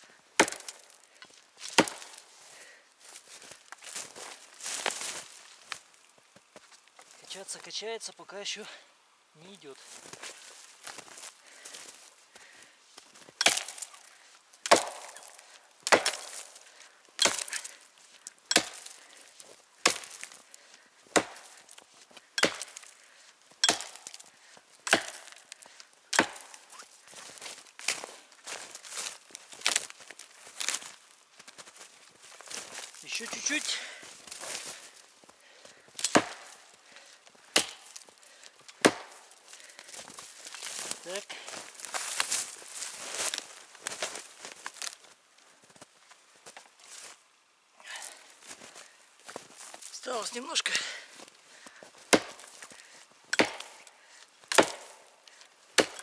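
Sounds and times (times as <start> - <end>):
axe chopping into tree: 0.4 - 0.9, 1.6 - 2.2, 13.4 - 14.0, 14.6 - 16.6, 17.2 - 17.8, 18.5 - 19.0, 19.8 - 20.4, 21.1 - 21.6, 22.4 - 22.9, 23.6 - 26.8, 36.0 - 36.6, 37.5 - 38.0, 38.7 - 39.4, 52.1 - 52.7, 53.3 - 53.9, 54.5 - 55.1, 55.7 - 56.0.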